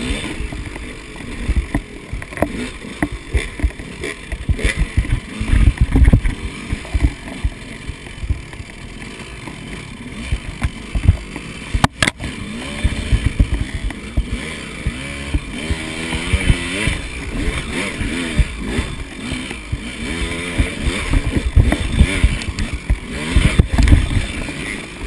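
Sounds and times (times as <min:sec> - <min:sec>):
dirt bike engine revving: 0:00.0 - 0:25.0.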